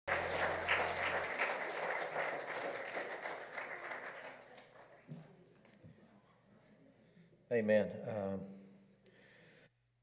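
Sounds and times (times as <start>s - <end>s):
congregation applauding: 0.0s - 5.1s.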